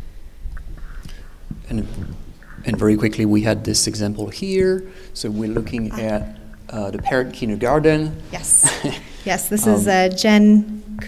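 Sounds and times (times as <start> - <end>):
low steady hum: 0.0 - 11.0
man speaking into a microphone: 1.7 - 9.9.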